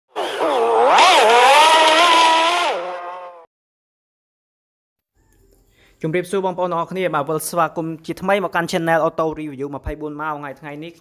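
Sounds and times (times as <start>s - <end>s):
sports car engine revving: 0.2s - 3.4s.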